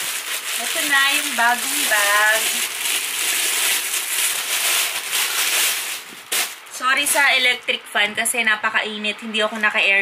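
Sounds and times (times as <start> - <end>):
plastic bag crinkling: 0.0 - 7.6.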